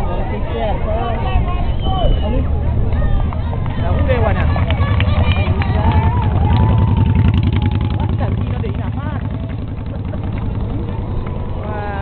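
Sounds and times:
faint voices: 0.0s - 12.0s
motor engine running: 3.4s - 12.0s.

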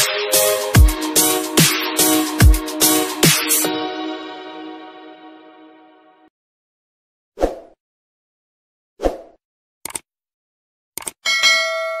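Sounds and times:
quick clicks: 9.8s - 10.1s, 11.0s - 11.2s
bell-like notification ding: 11.3s - 12.0s.

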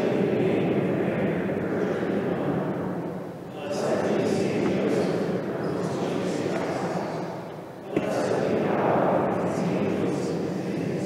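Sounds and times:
congregation singing in echoing church: 0.0s - 11.0s.

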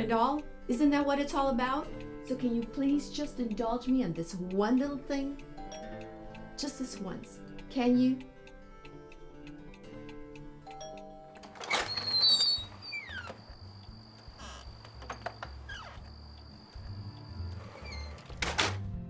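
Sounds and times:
soft background music: 0.0s - 19.0s
door opening: 11.4s - 13.6s, 14.3s - 16.2s, 17.5s - 18.9s.

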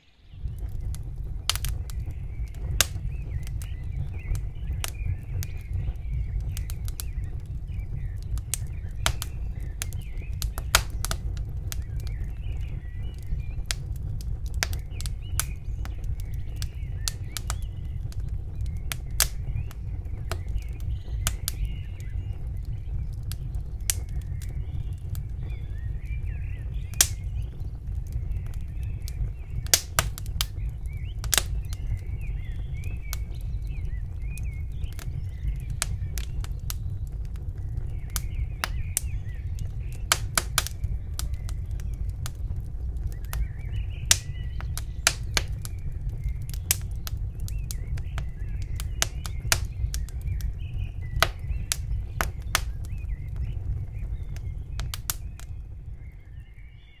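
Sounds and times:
small birds twittering: 0.0s - 57.0s
steady low rumble: 0.0s - 57.0s.

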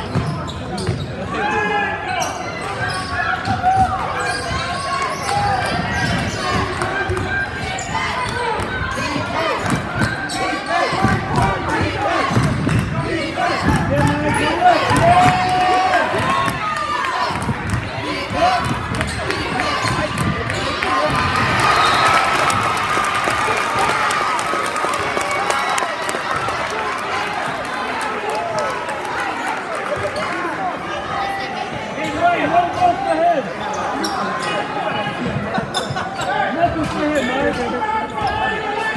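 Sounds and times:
sneakers squeaking: 0.0s - 1.3s, 2.0s - 11.5s, 17.3s - 22.7s, 33.5s - 38.9s
people chattering and shouting: 0.0s - 38.9s
spectators' voices: 0.0s - 38.9s.

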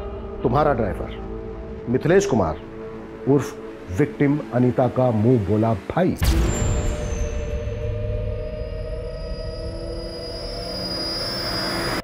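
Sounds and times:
held drone tones: 0.0s - 12.0s
hissing swell: 0.0s - 12.0s.

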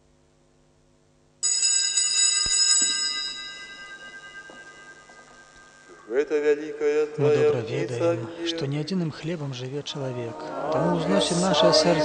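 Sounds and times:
small bells ringing: 1.4s - 6.1s.

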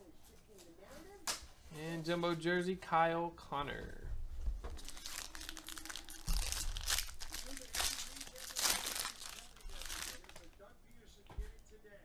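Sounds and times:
foil wrapper crinkling: 4.8s - 10.6s.

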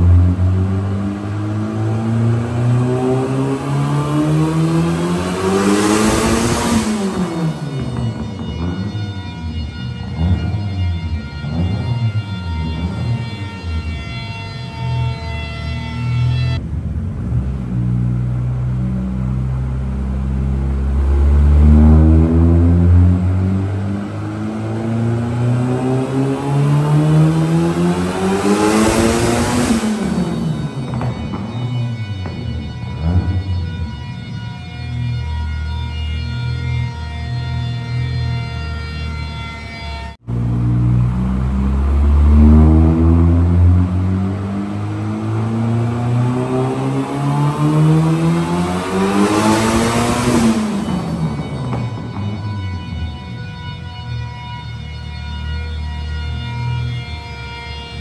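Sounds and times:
car engine revving: 0.0s - 15.1s, 15.8s - 39.4s, 40.2s - 53.8s.

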